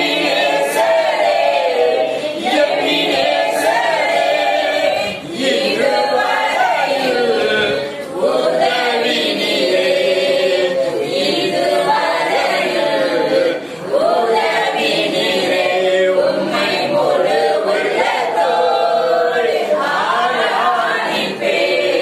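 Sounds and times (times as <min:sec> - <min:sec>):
voices singing a cappella: 0:00.0 - 0:22.0.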